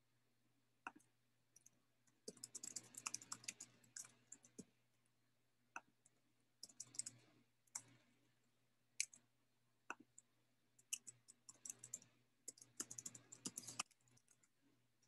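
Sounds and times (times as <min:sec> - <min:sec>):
keyboard and mouse clicking: 0:02.2 - 0:04.7, 0:06.6 - 0:07.2, 0:07.8 - 0:08.0, 0:09.0 - 0:09.2, 0:09.9 - 0:14.5.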